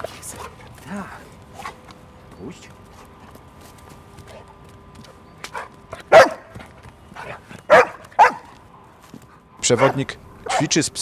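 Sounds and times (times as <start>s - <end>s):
dog barking: 6.1s - 6.5s, 7.7s - 8.5s, 9.7s - 10.8s.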